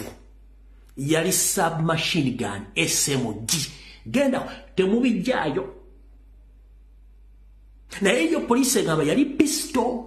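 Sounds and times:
man speaking: 0:00.0 - 0:00.3, 0:00.9 - 0:05.9, 0:07.9 - 0:10.0
faint low hum: 0:00.0 - 0:10.0.

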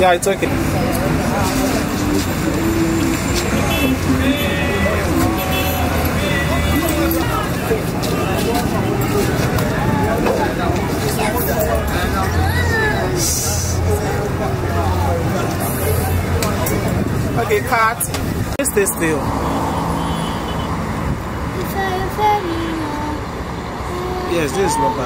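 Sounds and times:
people talking babble: 0:00.0 - 0:25.0
road traffic rumble: 0:00.0 - 0:25.0.

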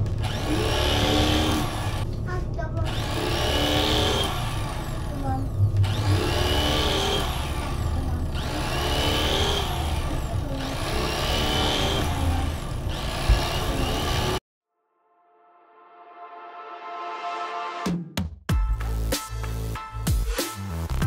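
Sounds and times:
electric knife motor buzzing: 0:00.0 - 0:02.1, 0:02.8 - 0:14.4.

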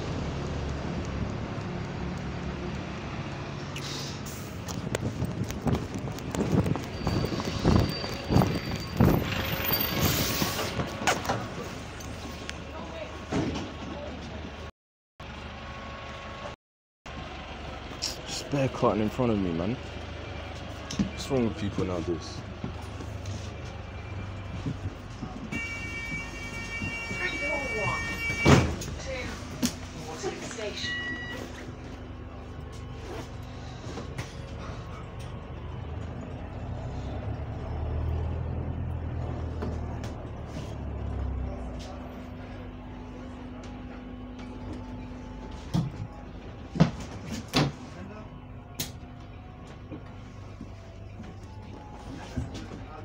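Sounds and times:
bus engine hum: 0:00.0 - 0:53.0
high warning tone: 0:25.5 - 0:29.3, 0:30.2 - 0:32.7
bus doors banging shut: 0:28.0 - 0:29.0.

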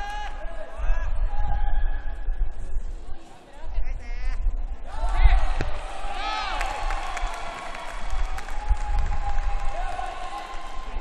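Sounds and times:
crowd shouting and cheering: 0:00.0 - 0:02.3, 0:04.8 - 0:11.0.

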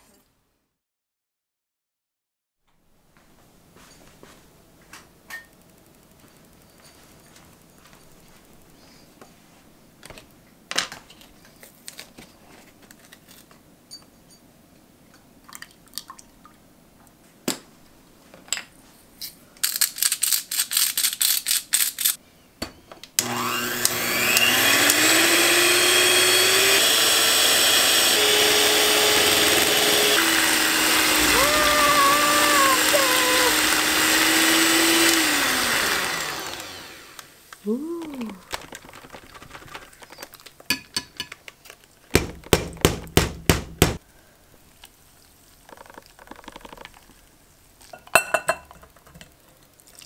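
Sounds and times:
electric hand mixer whirring: 0:23.2 - 0:37.4
quick clicks and rattles: 0:38.4 - 0:40.7.

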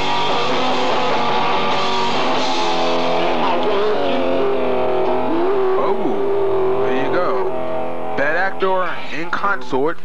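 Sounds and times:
live punk rock band: 0:00.0 - 0:08.2
person singing a long note: 0:03.3 - 0:07.6.

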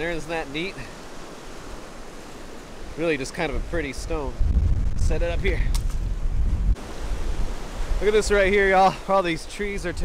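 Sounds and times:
wind rumble on microphone: 0:03.6 - 0:08.7.

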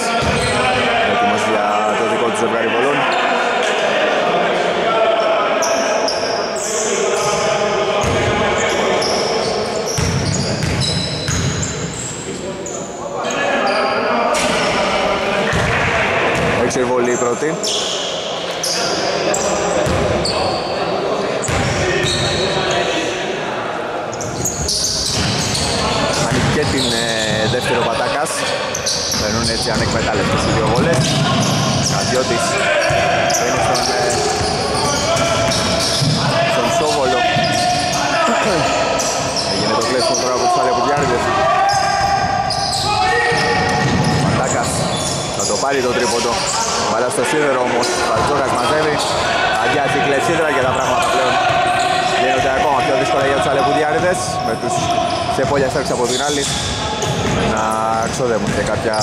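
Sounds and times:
voices: 0:00.0 - 0:59.0.

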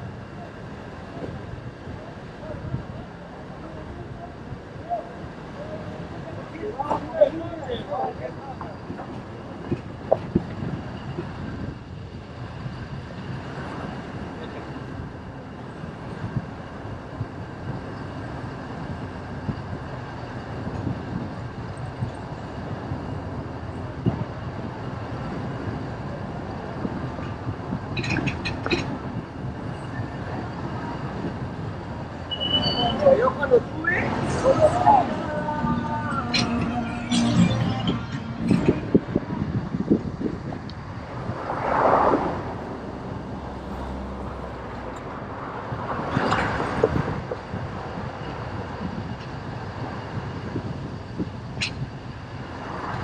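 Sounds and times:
road noise rumble inside vehicle: 0:00.0 - 0:53.0
voice or music: 0:34.3 - 0:38.7.

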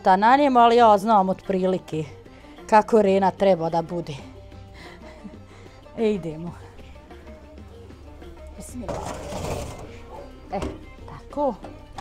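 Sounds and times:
metal baking tray sliding into oven: 0:08.9 - 0:09.9.

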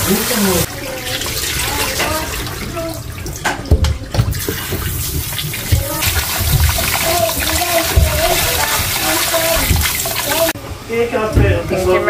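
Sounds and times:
tap water running into bowl: 0:00.0 - 0:10.6
dull knocks: 0:03.5 - 0:10.4
potatoes scrubbed by hand: 0:04.3 - 0:10.6.

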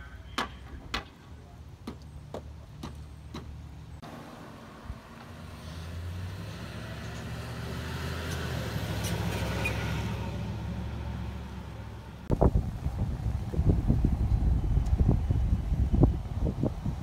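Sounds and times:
vehicle passing by: 0:04.0 - 0:16.5.

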